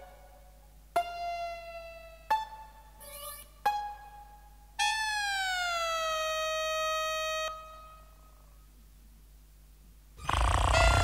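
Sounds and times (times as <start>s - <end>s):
noisy synth burst with rumble: 10.2s - 11.0s
synthesizer tone sliding down: 10.2s - 11.0s.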